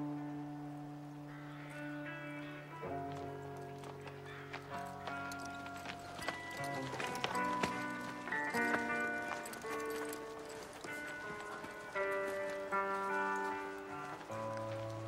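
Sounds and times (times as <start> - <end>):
slow music of held chords: 0.0 - 15.0
horse hooves clip-clopping on dirt: 1.3 - 15.0.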